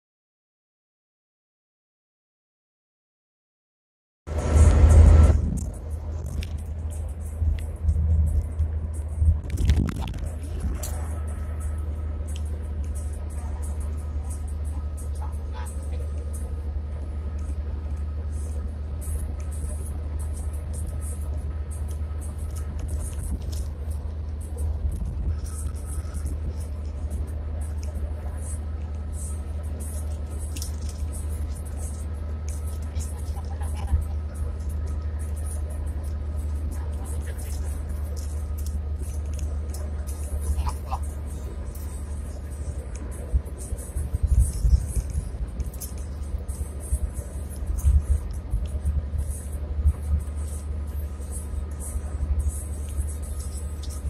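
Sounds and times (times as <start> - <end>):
faint steady whine: 4.3 - 54.0
tyre and engine rumble: 4.3 - 54.0
light high ticks: 10.8 - 54.0.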